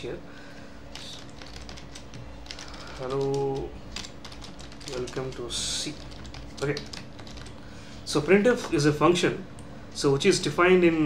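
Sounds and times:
computer keyboard typing: 0.9 - 7.6.

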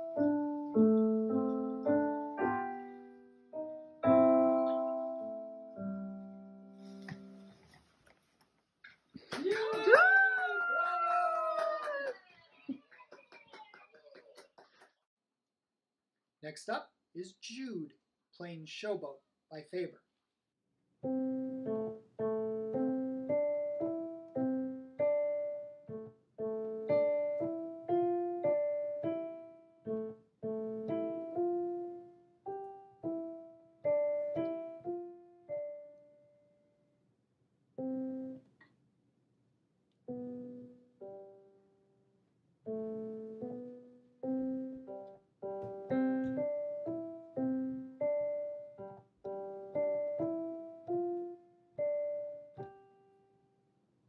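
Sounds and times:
digital piano playing: 0.0 - 7.6, 21.0 - 36.2, 37.8 - 38.5, 40.1 - 41.6, 42.7 - 53.0.

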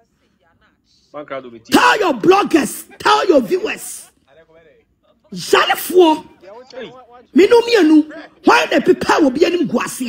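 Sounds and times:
man's voice: 1.2 - 10.0.

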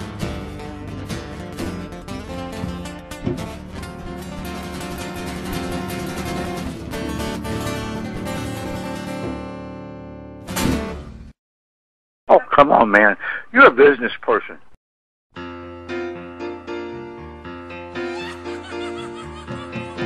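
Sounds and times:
acoustic guitars strumming: 0.0 - 11.2
hand drum: 2.6 - 9.4.

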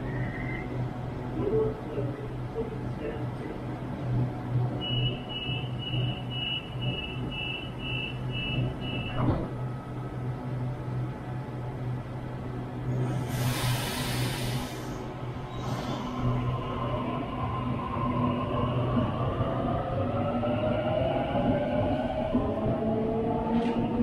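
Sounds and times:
door warning beeps: 4.8 - 9.2
loud hiss of air: 13.2 - 15.1.

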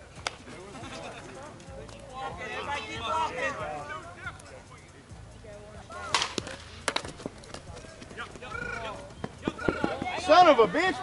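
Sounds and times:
bat cracking against ball: 0.2 - 0.5, 6.0 - 7.8
distant shouting: 8.1 - 11.0.

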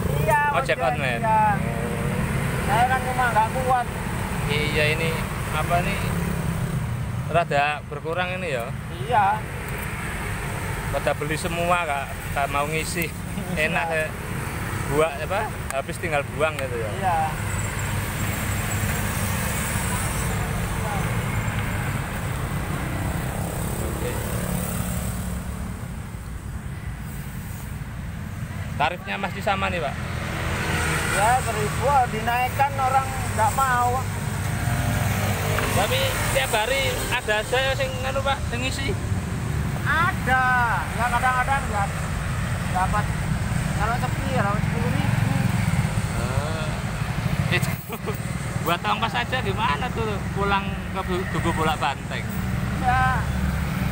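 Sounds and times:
road traffic rumble: 0.0 - 53.9.

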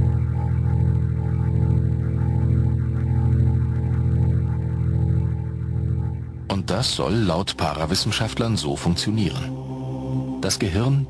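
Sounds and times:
low drone music: 0.0 - 11.0.

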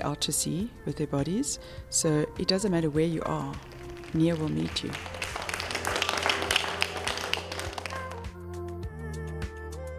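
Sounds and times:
upbeat music with drum beat: 3.4 - 8.8
people clapping along: 3.5 - 8.4.

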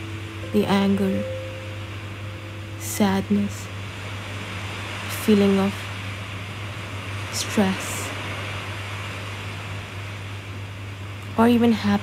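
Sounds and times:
steady hiss: 0.0 - 11.9
low even hum: 0.0 - 12.0.

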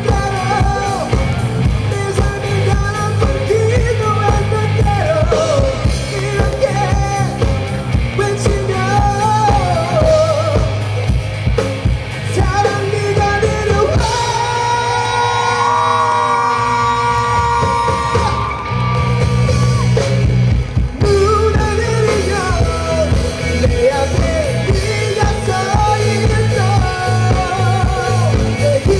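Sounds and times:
lead singer singing: 0.0 - 11.2, 12.1 - 28.9
live rock band playing: 0.0 - 28.9.

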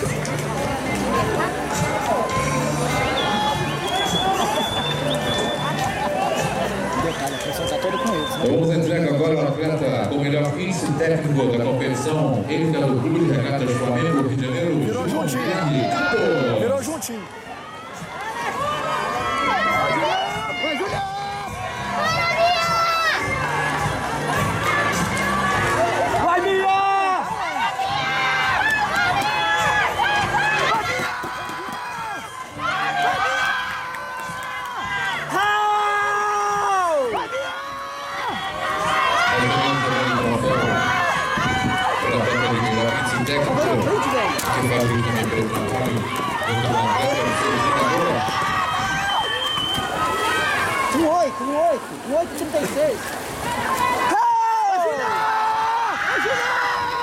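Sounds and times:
crowd shouting and cheering: 0.0 - 57.0.

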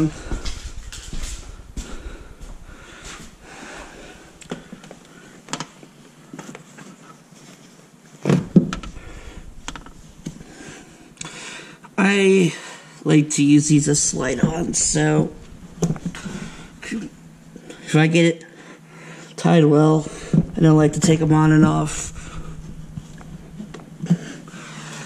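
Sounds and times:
clothing rustling: 0.0 - 4.8.

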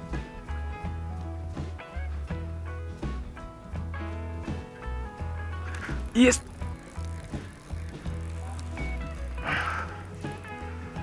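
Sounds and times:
background music: 0.0 - 11.0
fishing reel being wound: 5.6 - 11.0.

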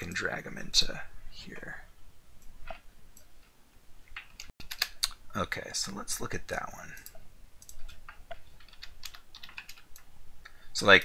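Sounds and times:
mouse and keyboard clicks: 4.1 - 5.2, 7.0 - 10.1.

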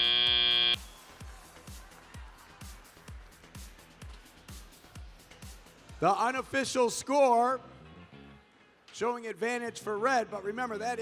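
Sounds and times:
shrill buzzer: 0.0 - 0.8
faint arena music with drum beat: 0.8 - 7.5.

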